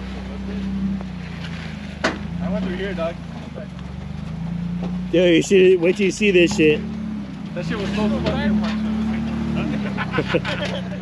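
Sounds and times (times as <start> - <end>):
engine running at low revs: 0.0 - 11.0
people's voices: 7.5 - 11.0.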